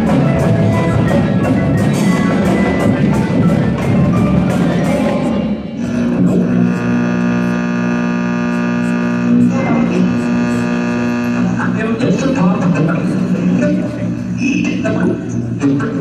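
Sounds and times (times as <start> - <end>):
percussion ensemble playing: 0.0 - 6.6.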